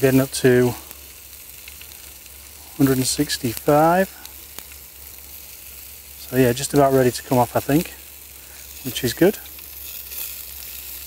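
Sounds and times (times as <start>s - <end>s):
chicken sizzling on a grill: 0.0s - 11.0s.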